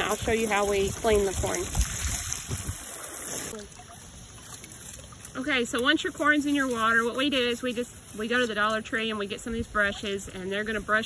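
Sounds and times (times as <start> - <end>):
water sloshing: 0.0 - 8.6
hose water running into tub: 0.0 - 11.0.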